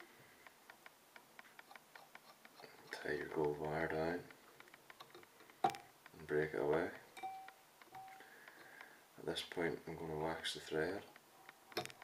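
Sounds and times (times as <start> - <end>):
faint even ticking: 0.0 - 9.2.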